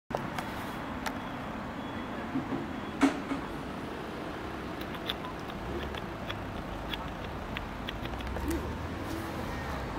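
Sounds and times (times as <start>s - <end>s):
distant road traffic rumble: 0.1s - 9.9s.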